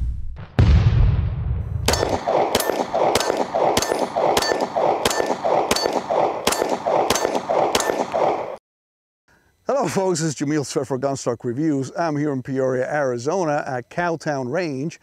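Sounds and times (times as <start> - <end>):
steel plate ringing: 1.9 - 8.2
pistol shots: 1.9 - 8.6.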